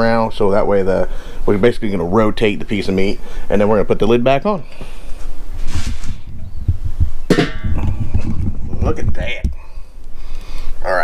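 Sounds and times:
wind rumble: 5.5 - 9.7
metal grill lid scraping: 5.6 - 6.3
handling noise and knocks: 6.7 - 8.4.

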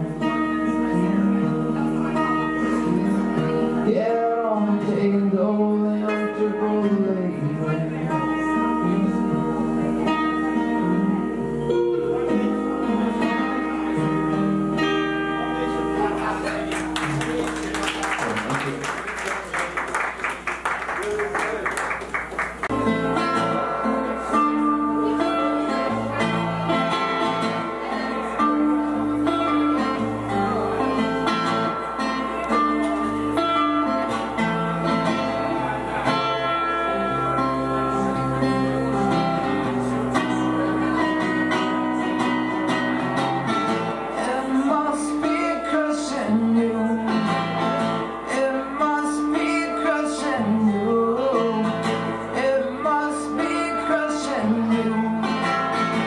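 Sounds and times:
acoustic guitar chords: 0.0 - 56.0.

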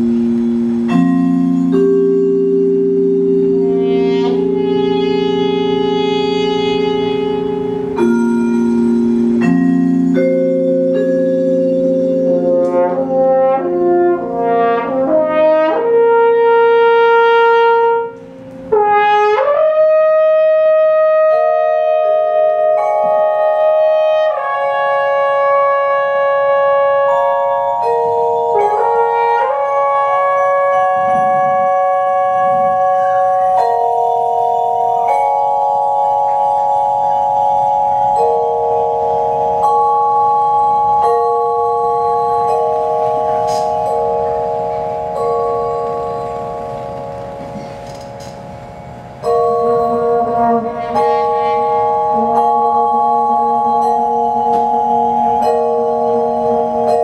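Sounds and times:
low held note: 0.0 - 57.0
vibraphone chords: 0.0 - 57.0.

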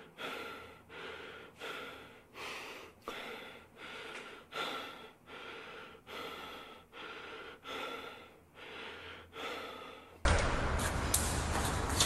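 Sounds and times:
person breathing hard: 0.0 - 10.2.

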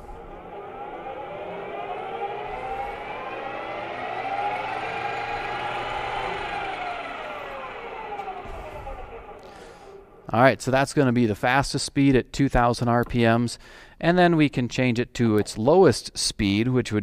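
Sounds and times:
metal lathe whine: 0.0 - 10.4.

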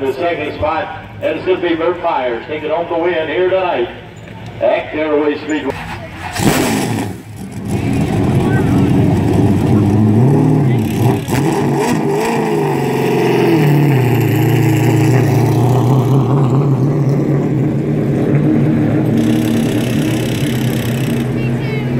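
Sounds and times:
race car engine revving: 5.7 - 21.9.

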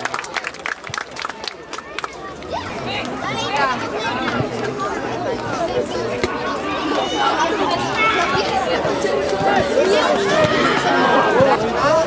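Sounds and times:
players shouting and calling: 1.5 - 12.0.

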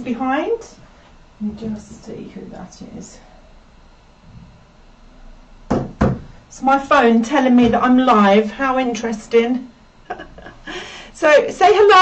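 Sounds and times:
short sharp knock: 5.7 - 6.3.

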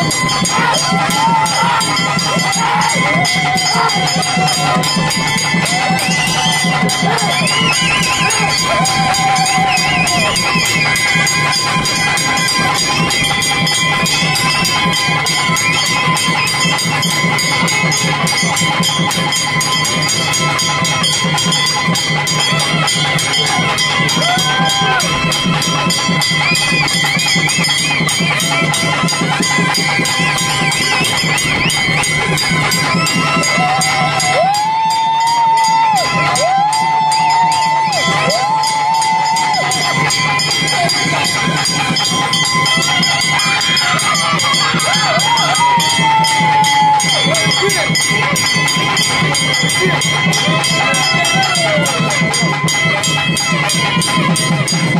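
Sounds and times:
crowd noise: 0.0 - 54.9
fast drumming: 0.0 - 54.9
steady high tones: 0.0 - 54.9.

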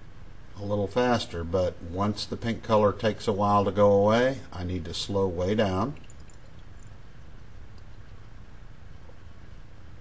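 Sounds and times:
steady low hum: 0.0 - 10.0
liquid swirling in a glass flask: 5.9 - 8.2.

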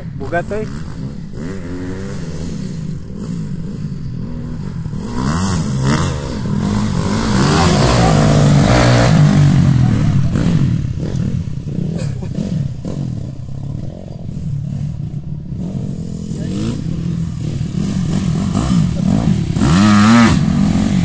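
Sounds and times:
dirt bike engines revving: 0.0 - 21.0.

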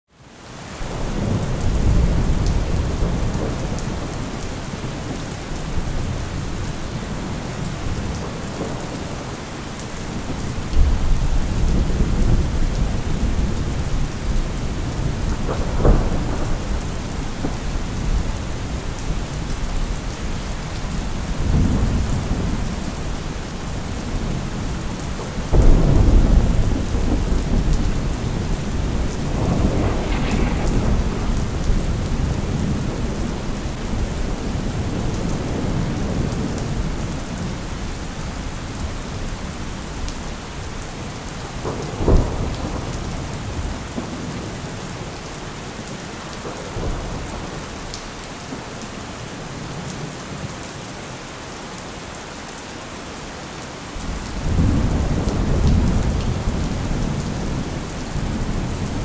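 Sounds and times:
steady rain: 0.1 - 59.0
thunder rumbling: 0.9 - 38.5, 40.0 - 44.6, 54.0 - 59.0.

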